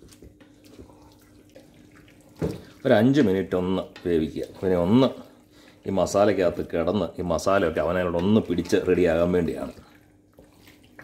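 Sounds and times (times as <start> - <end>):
spatula stirring food in pot: 0.0 - 11.0
person speaking: 2.8 - 9.9.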